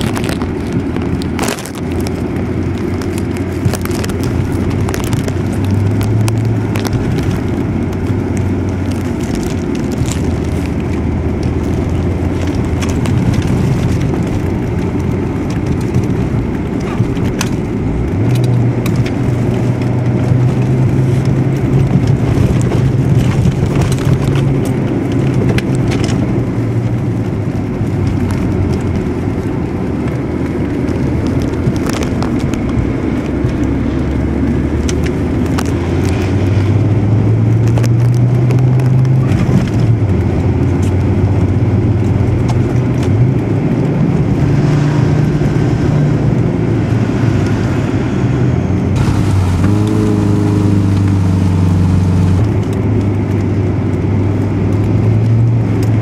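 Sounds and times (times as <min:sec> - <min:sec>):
clicks and crackles: 0:00.0 - 0:46.4, 0:48.9 - 0:56.0
car engine and road noise: 0:00.0 - 0:56.0.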